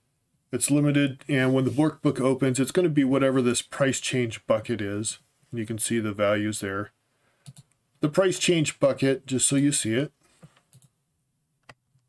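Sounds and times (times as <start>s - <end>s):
faint computer mouse clicks: 7.4s - 7.8s, 10.4s - 10.9s.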